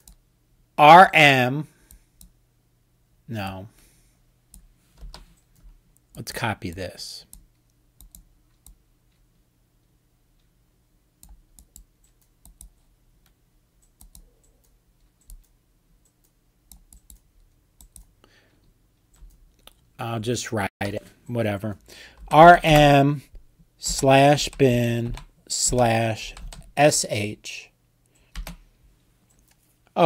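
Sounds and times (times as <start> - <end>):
low steady hum: 0.0 - 30.0
computer keyboard keystrokes: 7.3 - 8.8, 13.8 - 15.5, 16.1 - 18.1, 28.2 - 28.6.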